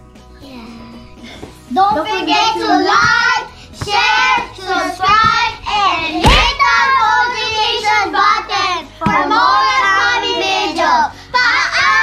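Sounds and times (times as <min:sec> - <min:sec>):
girls singing and shouting: 0:00.7 - 0:12.0
thump: 0:06.2 - 0:06.6.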